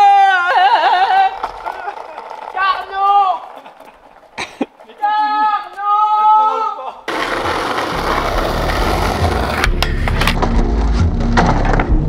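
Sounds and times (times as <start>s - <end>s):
skateboard wheels rolling on asphalt: 0.0s - 12.0s
skateboard clacks: 0.1s - 6.4s, 7.1s - 10.6s
music: 7.4s - 12.0s.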